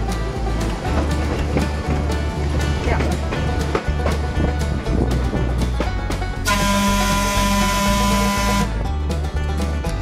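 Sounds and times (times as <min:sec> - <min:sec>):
background music: 0:00.0 - 0:10.0
air horn blast: 0:06.4 - 0:08.8.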